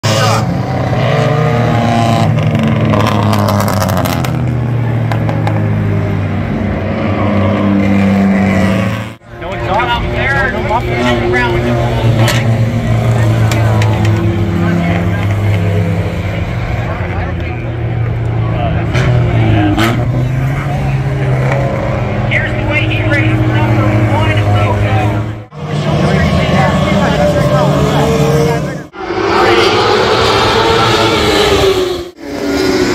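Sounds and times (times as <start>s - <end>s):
race car engines: 0.0s - 32.9s
voices: 9.2s - 32.1s.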